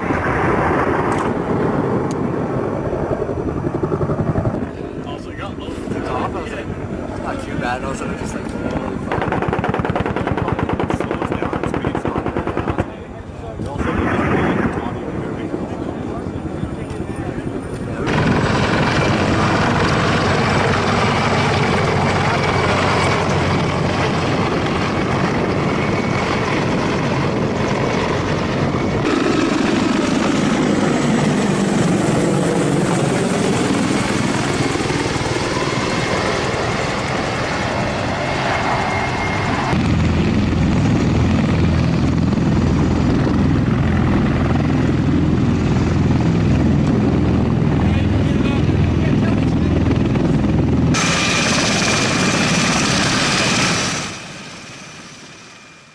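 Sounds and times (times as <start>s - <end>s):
helicopter rotors and turbines: 0.0s - 55.9s.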